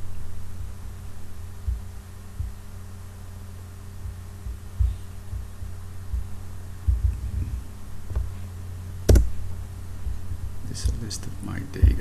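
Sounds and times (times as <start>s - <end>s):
low electrical hum: 0.0s - 12.0s
soft low thumps: 0.0s - 12.0s.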